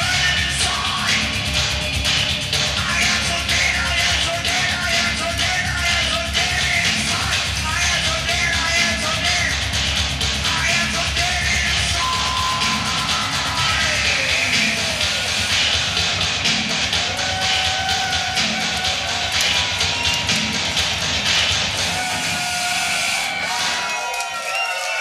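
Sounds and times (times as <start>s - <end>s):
heavy distorted guitars: 0.0s - 23.9s
driving drums: 0.0s - 24.0s.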